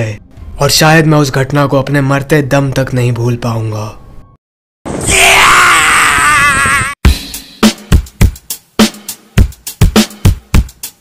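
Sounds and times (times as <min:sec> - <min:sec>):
man screaming: 0:05.0 - 0:07.0.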